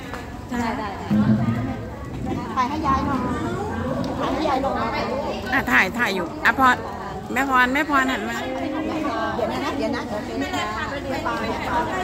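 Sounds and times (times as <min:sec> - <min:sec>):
overlapping chatter: 0:00.0 - 0:12.0.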